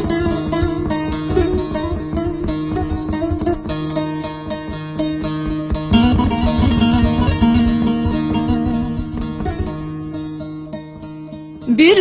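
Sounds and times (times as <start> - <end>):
plucked strings melody: 0.0 - 12.0
held low drone notes: 5.7 - 10.2.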